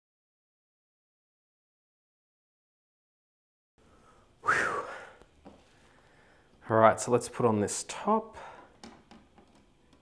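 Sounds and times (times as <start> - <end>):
man's breathy whew: 4.0 - 5.2.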